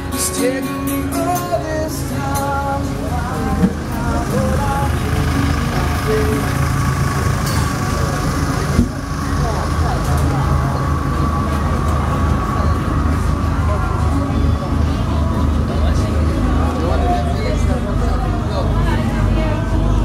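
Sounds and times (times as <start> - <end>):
people talking: 0.0 - 20.0
engine idling: 1.3 - 20.0.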